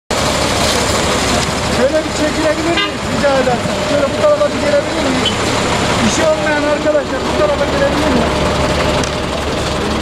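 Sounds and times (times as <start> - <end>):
loud motor vehicle noise: 0.1 - 10.0
people talking: 0.4 - 8.4.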